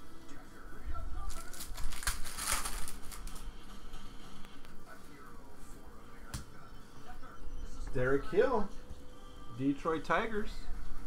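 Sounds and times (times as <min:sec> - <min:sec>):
foil wrapper crinkling and tearing: 0:01.2 - 0:03.5.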